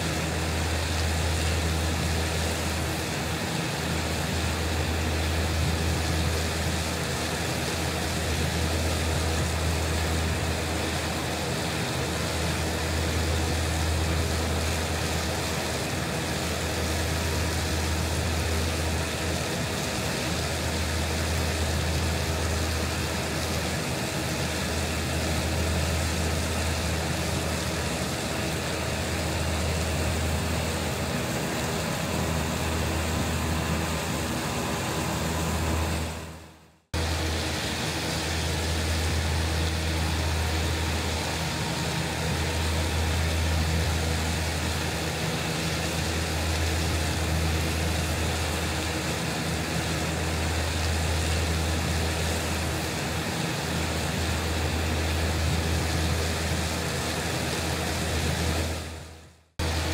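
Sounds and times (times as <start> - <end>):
mower mechanical hum: 0.0 - 59.9
tractor engine drone: 0.0 - 59.9.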